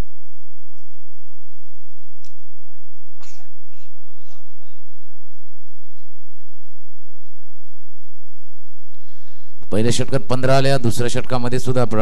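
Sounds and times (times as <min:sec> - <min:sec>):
breathy bursts: 0:09.0 - 0:09.7.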